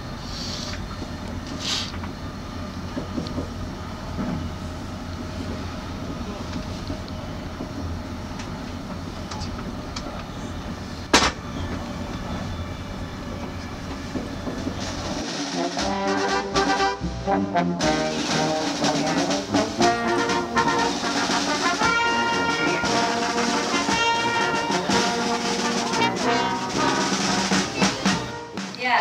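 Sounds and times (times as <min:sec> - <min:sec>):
train carriage rumble and rattle: 0:00.0 - 0:29.0
sharp bang: 0:11.1 - 0:11.5.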